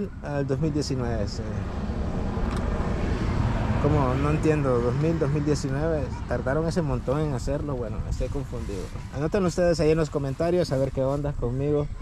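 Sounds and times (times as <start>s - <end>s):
vehicle passing by: 0.0s - 9.7s.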